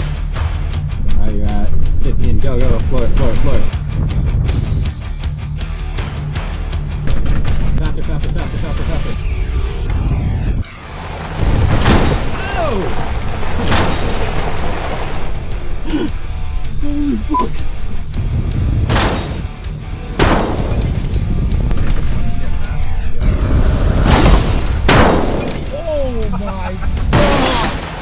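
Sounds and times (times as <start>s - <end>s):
background music: 0.0s - 28.0s
heavy crash impacts: 10.7s - 15.9s, 18.2s - 22.4s, 23.8s - 25.8s, 27.0s - 28.0s.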